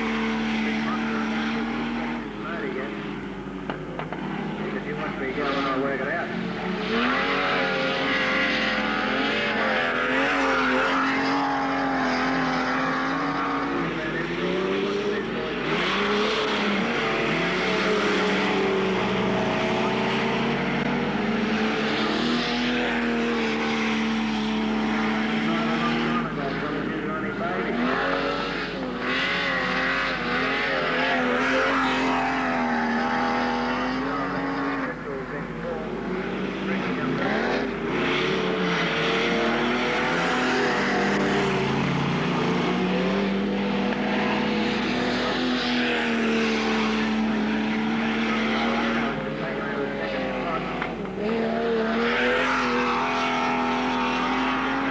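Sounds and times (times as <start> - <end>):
race car engines revving: 0.0 - 54.9.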